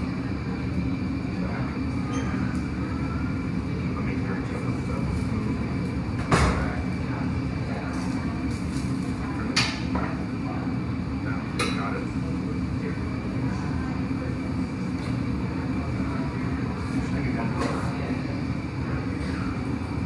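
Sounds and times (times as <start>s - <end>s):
furnace and fan roaring: 0.0s - 20.0s.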